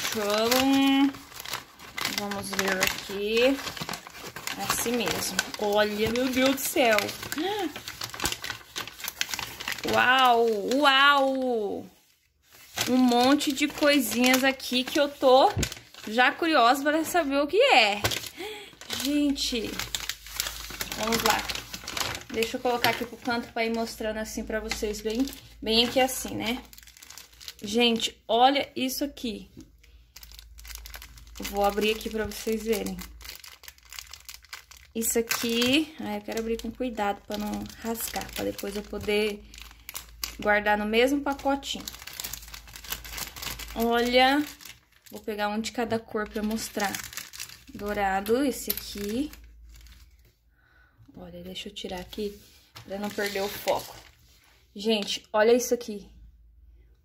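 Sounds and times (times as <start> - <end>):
paper and plastic crinkling: 0.0 - 28.2, 29.6 - 50.4, 51.8 - 55.3.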